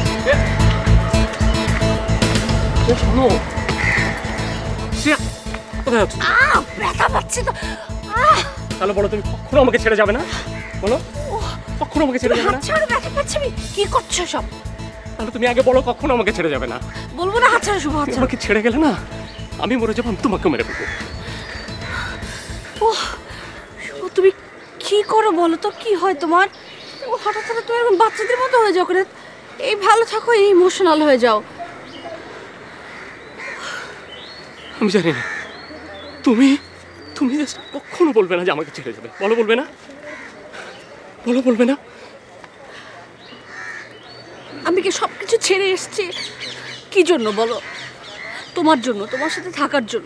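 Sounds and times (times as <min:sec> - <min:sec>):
background music: 0:00.0 - 0:24.4
crow cawing: 0:03.5 - 0:04.9, 0:10.2 - 0:13.0, 0:20.3 - 0:24.8, 0:27.1 - 0:29.3, 0:31.6 - 0:36.1, 0:37.6 - 0:40.8, 0:42.7 - 0:44.2, 0:44.8 - 0:49.9.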